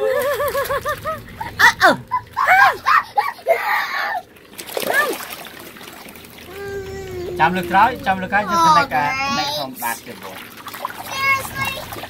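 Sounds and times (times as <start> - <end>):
water splashing in pool: 0.0 - 12.0
child squealing and calling: 6.5 - 8.9.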